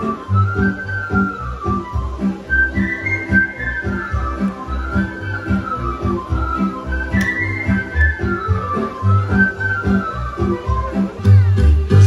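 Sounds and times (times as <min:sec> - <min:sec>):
sliding high melody: 0:00.0 - 0:11.3.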